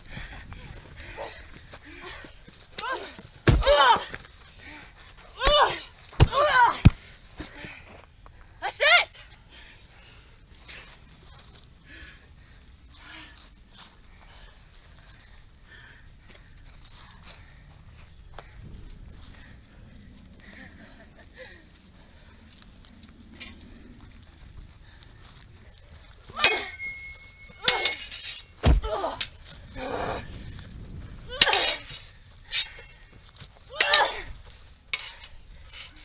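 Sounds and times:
person shouting: 2.8 - 4.1
blade ringing: 26.4 - 28.6
steel swords clashing: 26.4 - 29.4, 31.3 - 33.0, 33.7 - 36.0.

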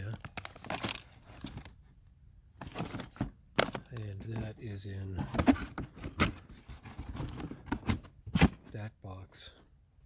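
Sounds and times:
cardboard boxes knocking and scraping: 2.6 - 4.5, 5.2 - 8.7.

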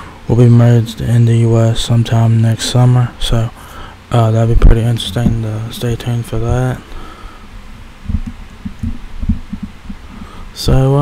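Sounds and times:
low dull thumps: 4.5 - 7.0, 7.7 - 10.4.

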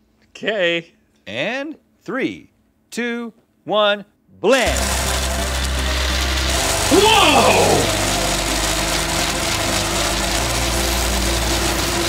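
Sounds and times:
blender motors whirring: 4.6 - 12.0.

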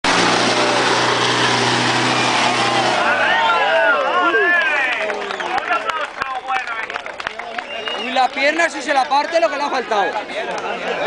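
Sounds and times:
engine roaring at high revs: 0.0 - 3.5
people shouting: 2.2 - 4.9.

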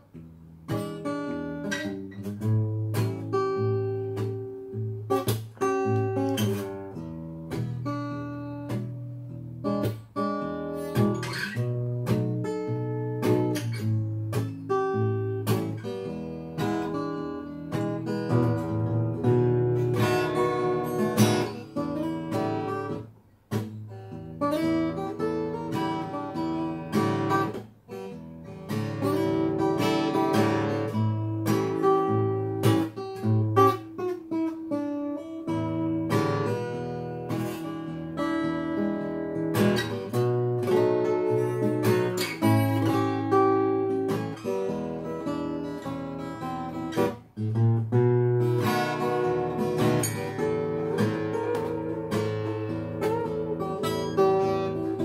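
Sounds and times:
acoustic guitar fingerpicking: 0.0 - 55.0.

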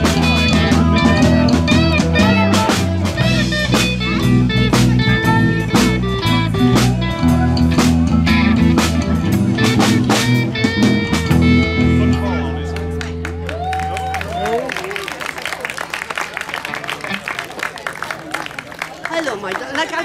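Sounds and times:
live rock band playing: 0.0 - 14.5.

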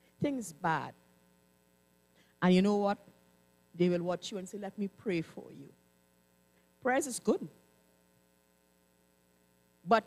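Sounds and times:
faint electrical mains hum: 0.0 - 10.0
woman's voice: 0.2 - 1.0, 2.4 - 3.0, 3.8 - 5.8, 6.8 - 7.6.

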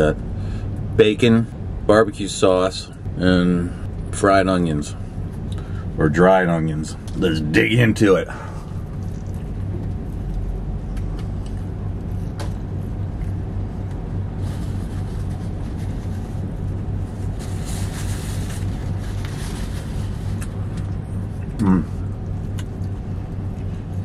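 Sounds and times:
vehicle idling hum: 0.0 - 24.0
man chewing food: 8.5 - 14.3, 20.3 - 24.0.

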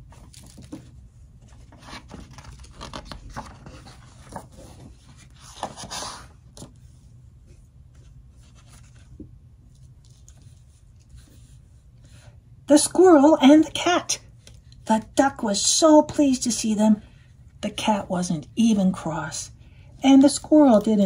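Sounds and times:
book page turning: 0.0 - 7.0, 7.9 - 11.7
rustling and scraping: 0.0 - 12.2.

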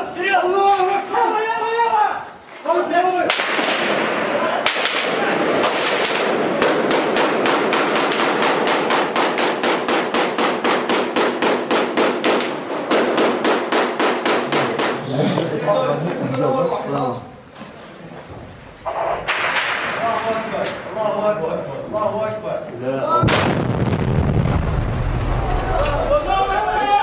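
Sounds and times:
continuous loud din: 3.3 - 16.3
automatic gunfire: 4.7 - 15.0
voices: 14.4 - 19.3, 25.4 - 27.0.

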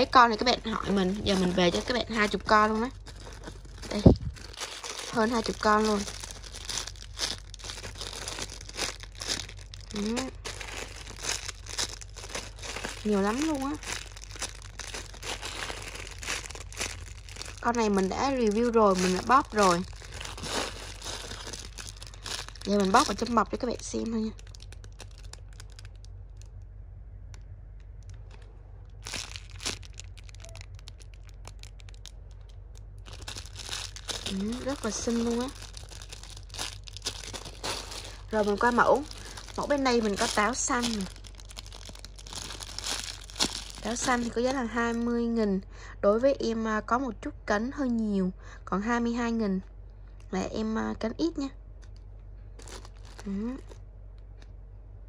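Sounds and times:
plastic wrapping crinkling: 0.0 - 26.6, 27.8 - 45.2, 52.5 - 53.8
steady low hum: 0.0 - 55.0.

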